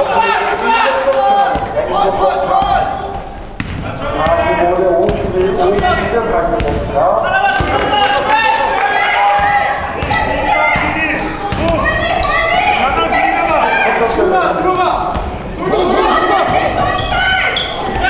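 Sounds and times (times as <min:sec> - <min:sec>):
players calling out: 0:00.0 - 0:18.0.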